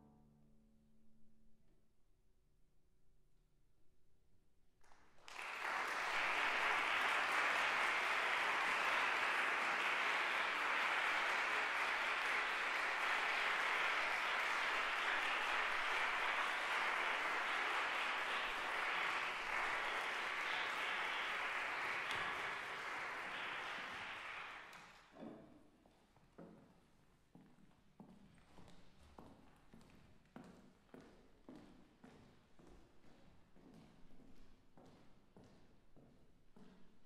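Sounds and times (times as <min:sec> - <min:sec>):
audience applause: 0:05.1 - 0:25.1.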